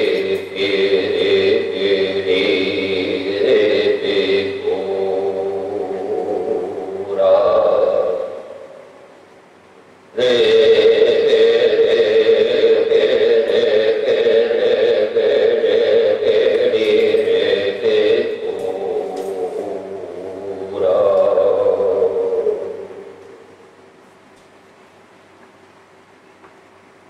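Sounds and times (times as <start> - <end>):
voice chanting long held notes: 0.0 - 9.1, 10.1 - 23.8.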